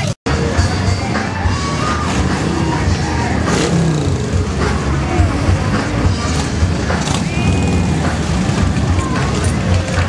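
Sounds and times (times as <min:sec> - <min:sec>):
motorcycle engines running: 0:00.0 - 0:10.0.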